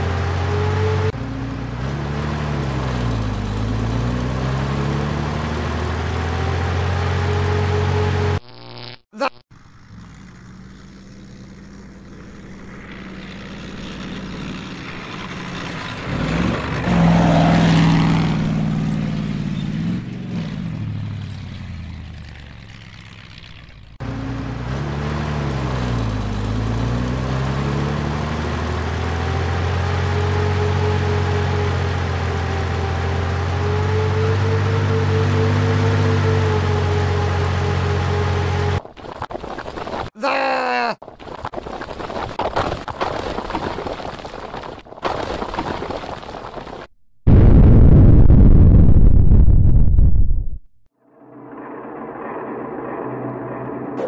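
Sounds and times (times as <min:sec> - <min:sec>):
bulldozer engine running: 0:00.0 - 0:07.3, 0:09.6 - 0:17.2, 0:17.8 - 0:38.9.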